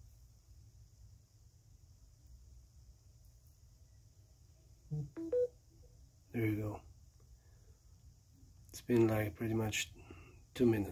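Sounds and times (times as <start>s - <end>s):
phone chime: 4.9s - 5.5s.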